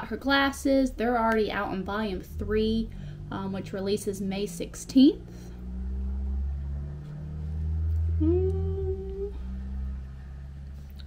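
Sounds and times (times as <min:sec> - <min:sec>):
low room hum: 0:00.0 - 0:11.0
woman humming: 0:08.0 - 0:09.7.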